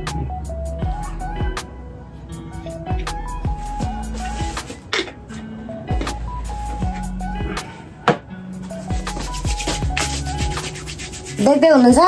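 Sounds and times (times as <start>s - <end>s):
faint music: 0.0s - 12.0s
rubbing on phone microphone: 8.7s - 11.9s.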